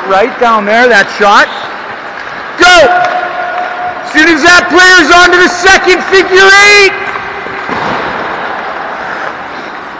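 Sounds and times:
man shouting: 0:02.6 - 0:07.1.

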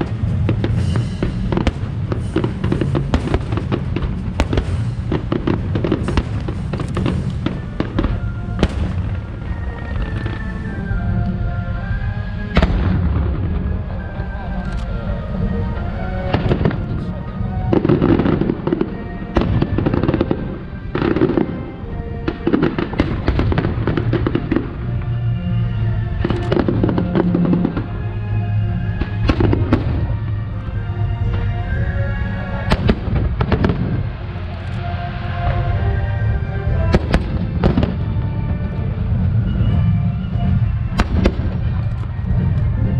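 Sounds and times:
background music: 0:00.0 - 0:42.9
fireworks bursting: 0:00.0 - 0:42.9.

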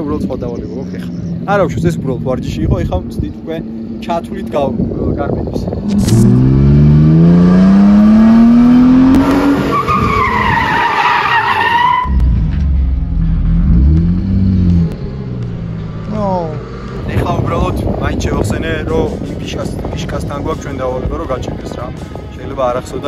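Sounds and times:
car engine revving: 0:05.6 - 0:18.4
tyres squealing: 0:09.6 - 0:12.2.

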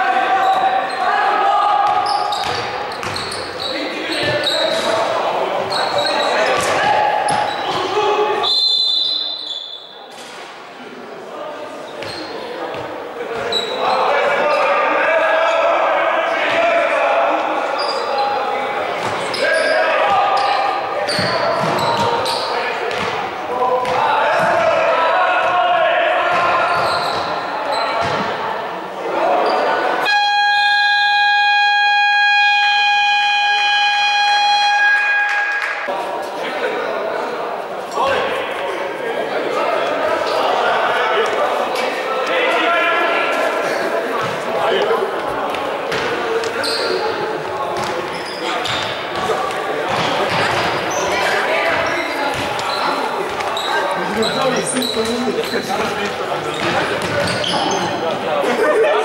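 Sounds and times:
voices echoing in large hall: 0:00.0 - 0:59.0
scoreboard buzzer blast: 0:30.0 - 0:34.8.

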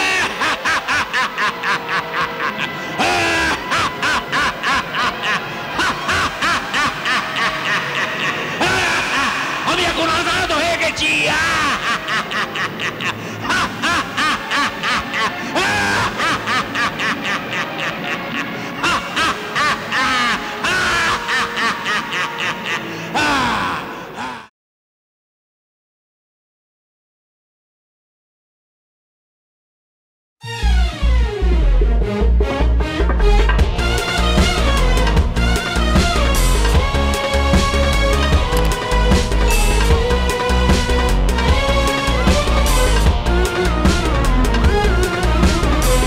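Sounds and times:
background music: 0:00.0 - 0:24.4, 0:30.4 - 0:46.0
man laughing: 0:00.0 - 0:24.5.

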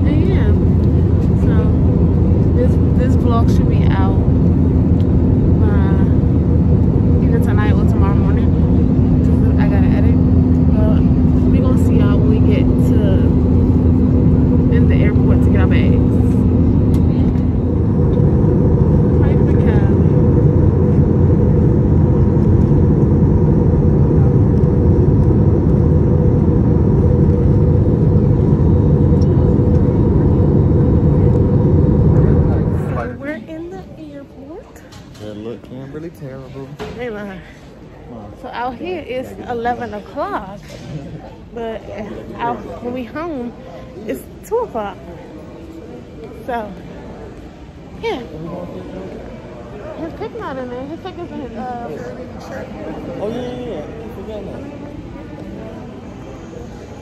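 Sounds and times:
airliner cabin engine roar: 0:00.0 - 0:57.0.

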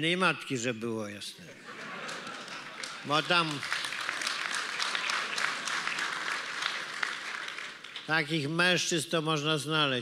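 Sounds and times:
audience applauding: 0:01.8 - 0:08.4.

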